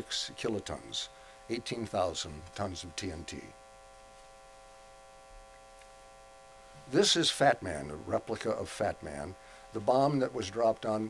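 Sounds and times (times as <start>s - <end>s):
faint electrical hum: 0.0s - 11.0s
light hiss: 0.0s - 11.0s.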